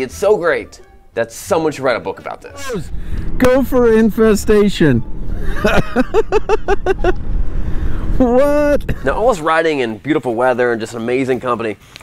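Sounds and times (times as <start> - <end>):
man laughing: 5.4 - 7.2.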